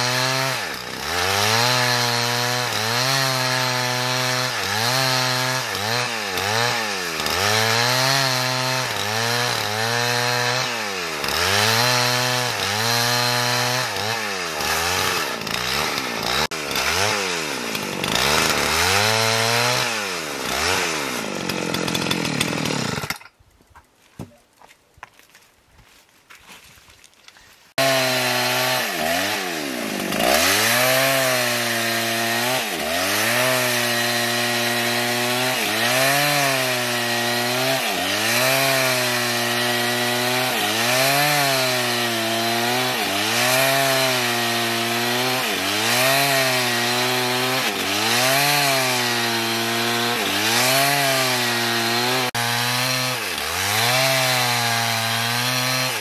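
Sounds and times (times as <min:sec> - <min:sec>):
chainsaw ripping along a log: 0:00.0 - 0:23.4, 0:27.7 - 0:56.0.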